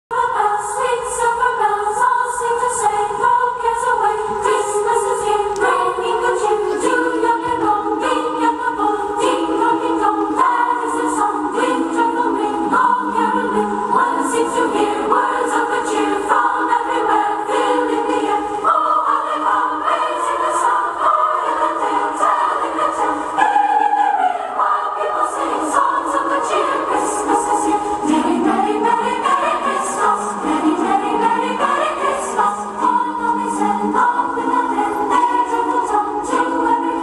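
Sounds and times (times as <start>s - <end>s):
choir singing held notes: 0.1s - 37.0s.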